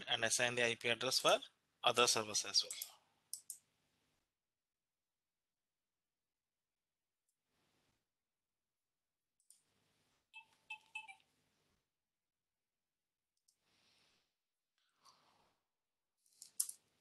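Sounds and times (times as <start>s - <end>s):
computer mouse clicks: 2.7s - 3.6s.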